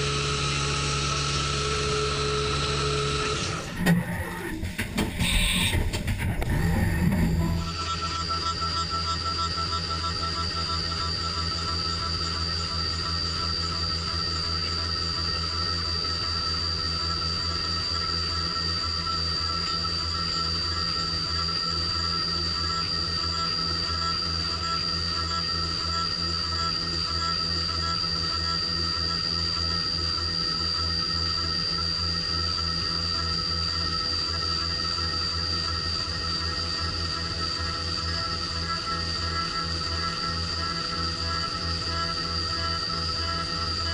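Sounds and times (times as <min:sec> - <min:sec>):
milling machine whine: 0:00.0 - 0:43.9.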